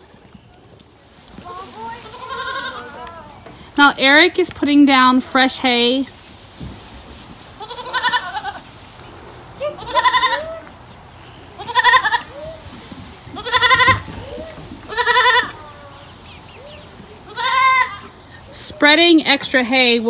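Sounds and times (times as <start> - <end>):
goat bleating: 1.8 - 3.3, 7.6 - 8.7, 9.6 - 10.7, 11.6 - 12.6, 13.2 - 16.1, 17.2 - 18.2.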